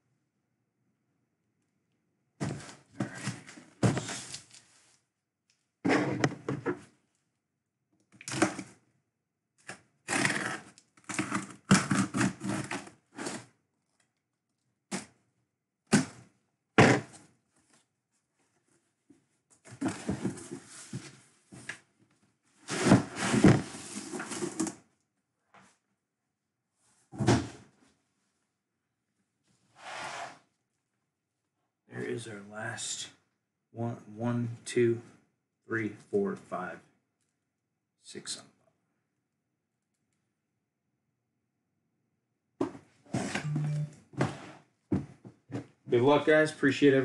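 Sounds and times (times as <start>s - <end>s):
cardboard scrapes and rustles: 22.6s - 24.8s.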